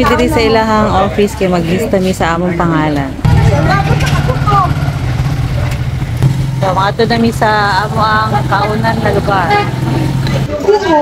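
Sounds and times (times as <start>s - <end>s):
small motorcycle engine running: 3.2s - 10.6s.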